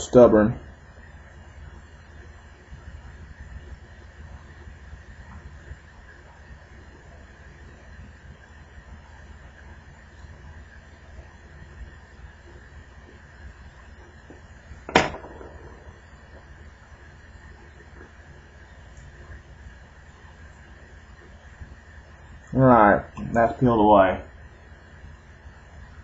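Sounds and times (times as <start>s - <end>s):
steady low hum: 0.0s - 26.0s
sharp loud click: 14.9s - 16.2s.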